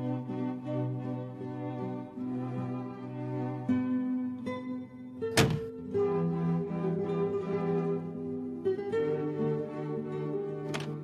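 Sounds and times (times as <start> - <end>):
plucked and bowed strings music: 0.0 - 11.0
car door shutting: 5.4 - 5.7.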